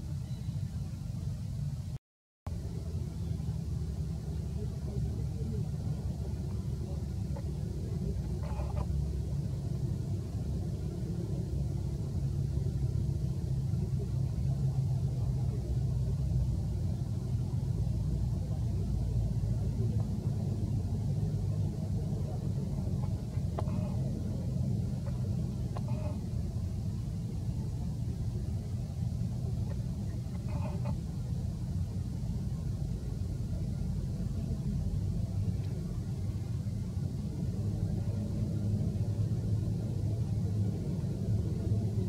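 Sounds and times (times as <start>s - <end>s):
steady low rumble: 0.0s - 42.0s.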